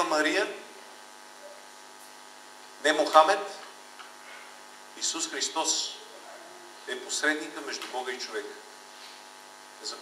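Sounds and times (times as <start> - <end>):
electrical mains hum: 0.0 - 10.0
man speaking: 2.8 - 3.6, 5.0 - 6.2, 6.8 - 8.6, 9.8 - 10.0.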